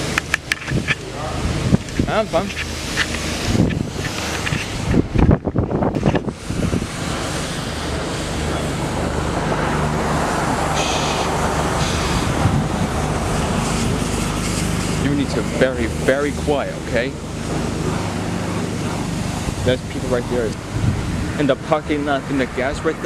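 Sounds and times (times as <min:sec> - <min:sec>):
bumps and rustling: 0:00.0 - 0:06.4
low mechanical hum: 0:00.0 - 0:23.0
steady rushing hiss: 0:00.0 - 0:23.0.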